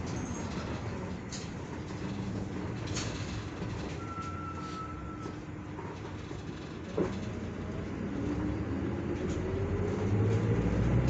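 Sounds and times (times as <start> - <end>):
bus engine and road rumble: 0.0 - 11.0.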